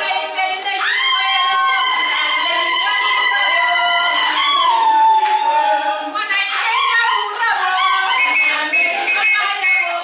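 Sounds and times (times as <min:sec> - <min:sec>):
crowd noise: 0:00.0 - 0:10.0
crowd singing: 0:00.0 - 0:10.0.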